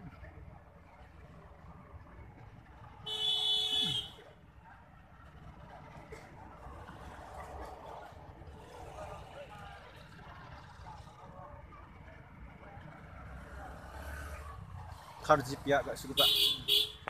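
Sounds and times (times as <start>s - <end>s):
vehicle horn: 3.0s - 4.2s, 16.2s - 17.0s.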